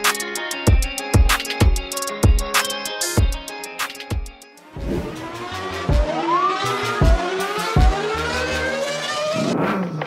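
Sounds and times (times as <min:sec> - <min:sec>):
music with low bass hits: 0:04.1 - 0:06.3, 0:06.9 - 0:08.2
engine accelerating through gears: 0:04.7 - 0:10.0.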